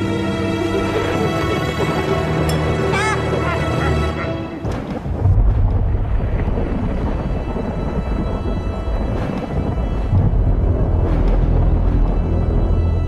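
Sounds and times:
steady rain: 0:00.0 - 0:13.0
thunder rumbling: 0:02.8 - 0:13.0.

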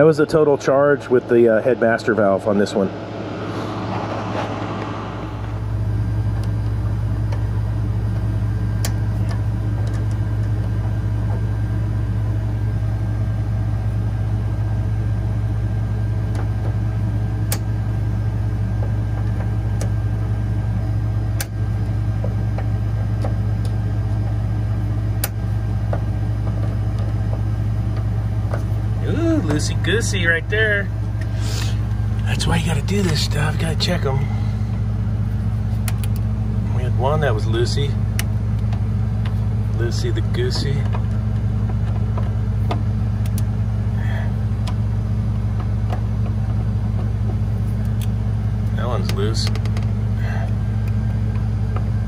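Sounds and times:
refrigeration equipment hum: 0:00.0 - 0:52.0.

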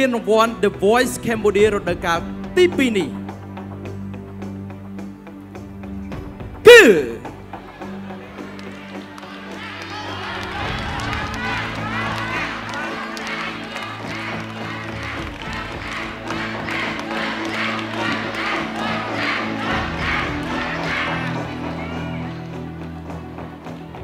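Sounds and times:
crowd shouting and cheering: 0:06.6 - 0:24.0.

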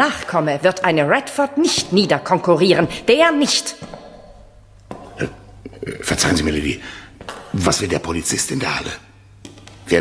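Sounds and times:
faint steady hum: 0:00.0 - 0:10.0
man burping: 0:04.9 - 0:06.3.

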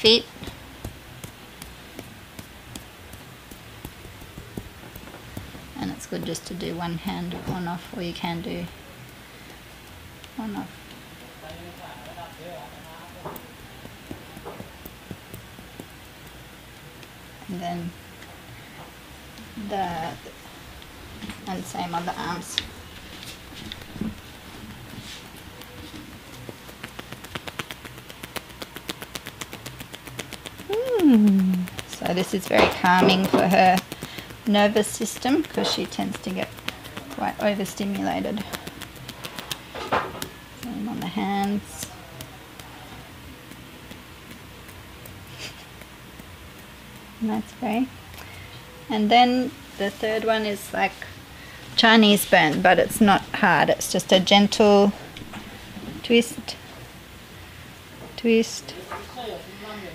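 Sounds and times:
hands patting on feet: 0:00.4 - 0:06.3, 0:13.2 - 0:16.4, 0:21.3 - 0:42.8.

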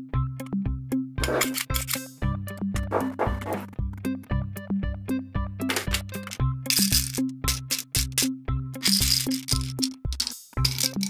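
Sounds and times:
music with thumping beat: 0:02.2 - 0:04.4
candies rattling in plastic tube: 0:05.8 - 0:08.2, 0:08.8 - 0:11.0.

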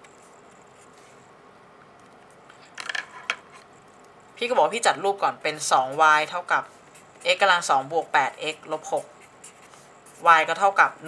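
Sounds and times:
person speaking: 0:04.4 - 0:11.0
marker squeaking on paper: 0:05.4 - 0:10.8.

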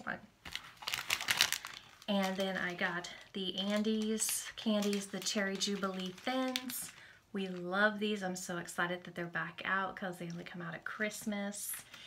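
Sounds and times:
plastic candy packaging rustling: 0:00.0 - 0:08.2, 0:11.5 - 0:12.0.

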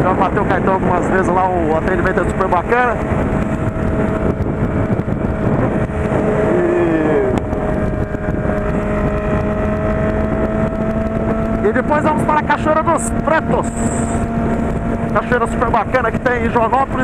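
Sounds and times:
motorcycle engine cruising: 0:00.0 - 0:17.0
wind rush over microphone: 0:00.0 - 0:17.0.

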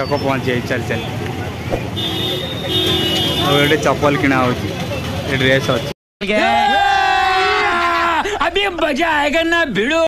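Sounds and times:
busy street traffic: 0:00.0 - 0:06.0
crowd chatter: 0:01.0 - 0:05.9
vehicle horn tooting: 0:01.9 - 0:03.9.

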